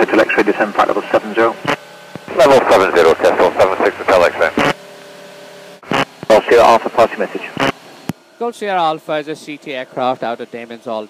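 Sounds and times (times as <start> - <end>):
voice over aircraft radio: 0.0 - 1.6, 2.3 - 4.7, 6.3 - 7.6
steady hum with held tones: 0.0 - 11.0.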